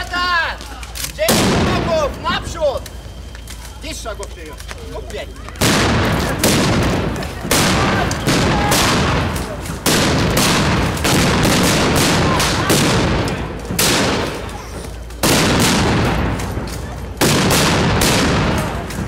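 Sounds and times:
rifles firing blank rounds: 0:00.6 - 0:19.0
distant rifle shots: 0:05.6 - 0:14.6, 0:15.2 - 0:19.0.

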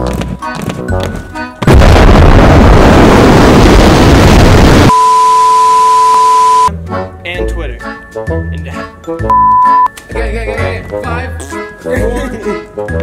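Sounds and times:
distorted explosion sound effect: 0:01.6 - 0:04.9
high censor bleep: 0:04.9 - 0:06.7, 0:09.3 - 0:09.9.

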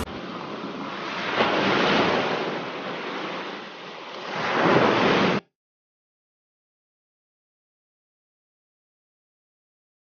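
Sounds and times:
water rushing along boat hull: 0:00.0 - 0:05.5.

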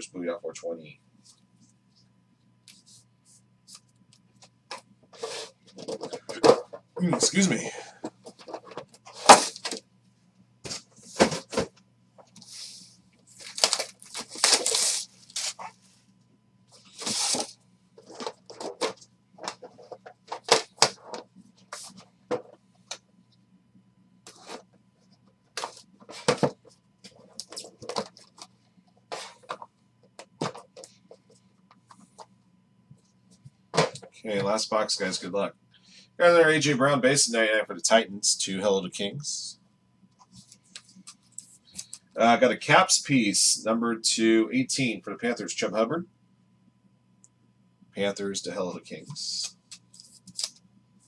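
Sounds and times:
cardboard boxes rustling: 0:10.7 - 0:11.7, 0:13.4 - 0:15.8, 0:16.8 - 0:21.2
cardboard scraping and crackling: 0:13.4 - 0:15.8.

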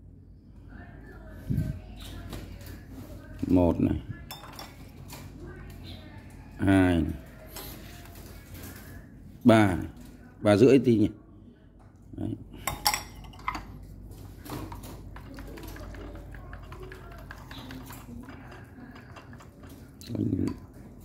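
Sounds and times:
metal spoon clinking on ceramic bowls: 0:04.3 - 0:04.9, 0:12.6 - 0:13.8, 0:15.3 - 0:20.8
chopsticks stirring liquid in bowl: 0:14.6 - 0:21.0.

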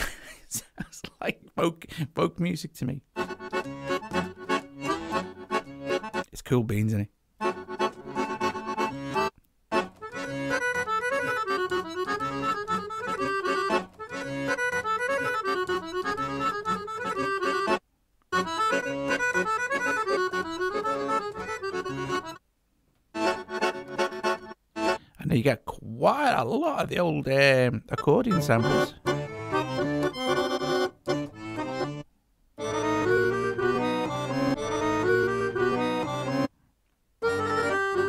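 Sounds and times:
accordion melodic phrases: 0:03.0 - 0:22.4, 0:23.1 - 0:25.2, 0:26.1 - 0:36.6, 0:37.2 - 0:38.0.

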